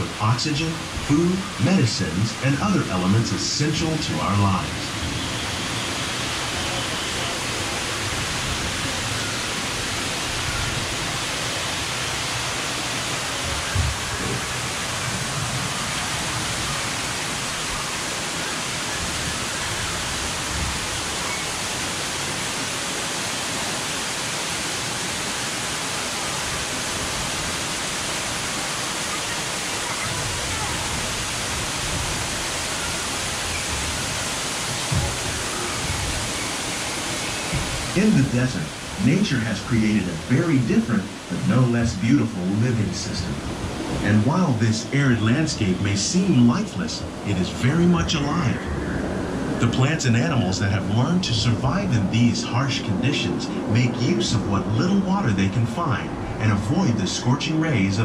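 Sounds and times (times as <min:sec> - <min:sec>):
falling water rushing: 0:00.0 - 0:58.0.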